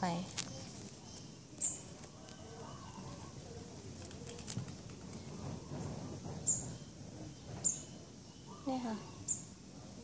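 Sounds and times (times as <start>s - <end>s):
low steady rustling: 0.0s - 8.2s.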